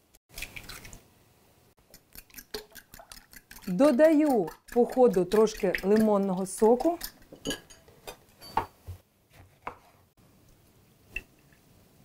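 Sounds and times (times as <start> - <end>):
kitchen utensils clicking and tapping: 2.0 - 8.8.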